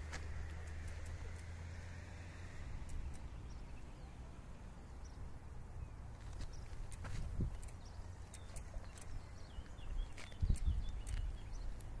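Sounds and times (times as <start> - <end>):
high bird chirps: 2.8 - 12.0
wind rumble on microphone: 5.8 - 12.0.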